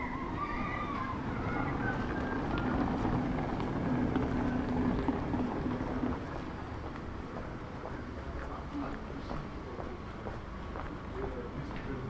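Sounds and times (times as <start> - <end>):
town street ambience: 0.0 - 12.0
vehicle engine hum: 0.0 - 12.0.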